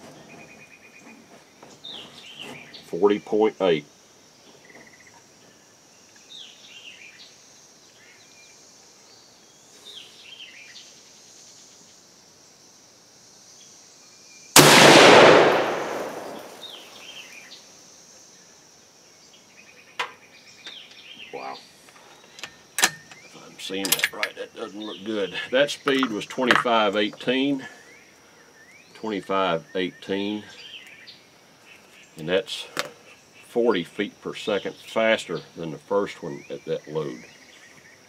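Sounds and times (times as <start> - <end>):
faint bird chirps: 0.1 - 12.6, 15.9 - 33.6, 34.5 - 38.0
rifle shot with echo: 14.6 - 17.1.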